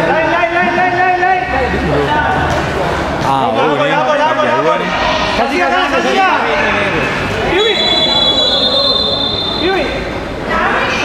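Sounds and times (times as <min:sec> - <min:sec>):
players shouting: 0:03.7 - 0:11.0
referee's whistle blast: 0:07.5 - 0:09.8.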